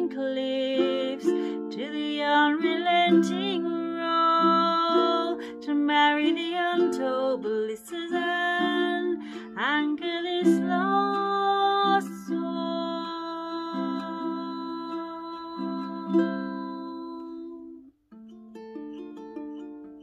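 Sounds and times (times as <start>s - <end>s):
woman singing: 0.0s - 17.9s
ukulele strumming: 0.0s - 20.0s.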